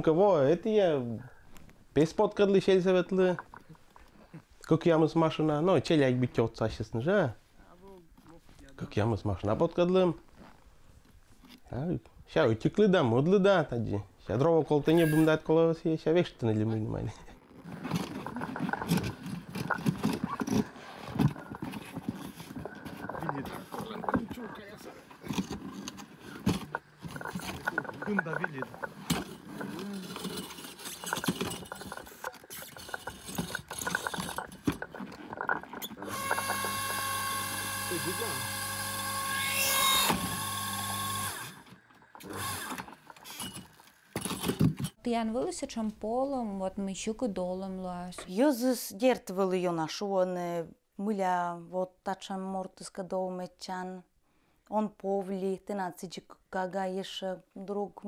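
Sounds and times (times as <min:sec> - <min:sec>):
log handling clatter: 0:17.3 - 0:36.9, 0:42.1 - 0:45.0
electric motor humming: 0:35.9 - 0:43.4.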